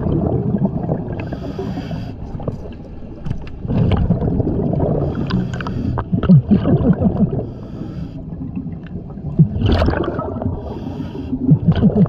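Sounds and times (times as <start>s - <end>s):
bubbles from underwater exhale: 0.0s - 1.6s, 3.6s - 7.6s, 8.3s - 12.0s.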